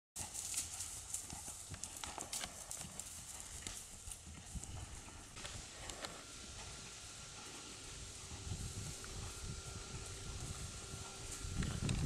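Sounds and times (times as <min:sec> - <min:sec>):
horse hooves on grass: 0:00.2 - 0:12.0.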